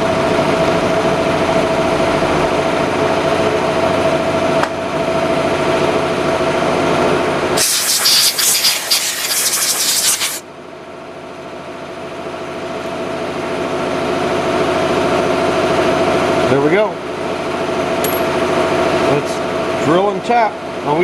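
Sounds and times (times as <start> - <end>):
loud hiss: 7.6 - 10.4.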